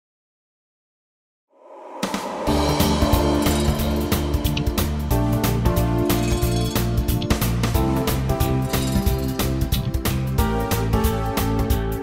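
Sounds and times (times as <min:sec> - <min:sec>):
backing track with bass and drums: 0:02.5 - 0:12.0.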